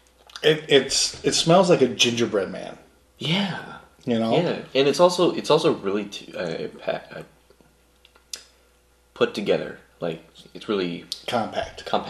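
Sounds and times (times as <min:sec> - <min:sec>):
person saying uh: 0:00.4 - 0:01.6, 0:03.2 - 0:04.6.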